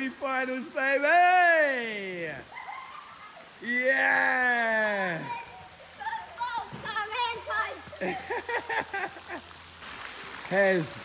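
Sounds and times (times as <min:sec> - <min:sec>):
fountain splashing: 0:00.0 - 0:11.0
children calling and shouting: 0:01.3 - 0:09.2.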